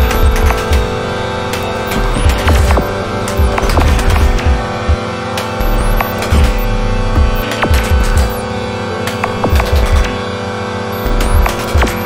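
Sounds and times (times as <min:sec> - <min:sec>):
scattered clicks: 0:00.0 - 0:00.9, 0:01.5 - 0:10.2, 0:11.0 - 0:12.0
glitchy squeaks: 0:00.0 - 0:01.0, 0:01.6 - 0:05.0, 0:05.6 - 0:08.5, 0:09.1 - 0:10.2, 0:10.9 - 0:12.0
deep low pulses: 0:00.0 - 0:10.2
experimental electronic music: 0:00.0 - 0:12.0
steady droning tones: 0:00.0 - 0:12.0.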